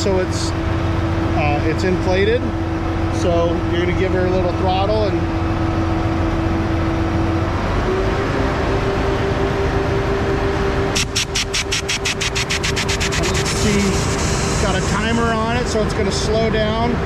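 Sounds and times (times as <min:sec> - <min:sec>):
diesel truck engine idling: 0:00.0 - 0:17.0
rapid ticking of pump: 0:11.0 - 0:15.2.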